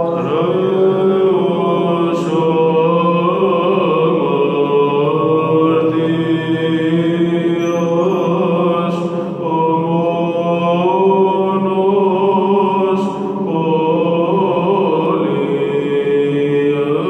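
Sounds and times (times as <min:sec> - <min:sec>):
man chanting a hymn: 0:00.0 - 0:17.0.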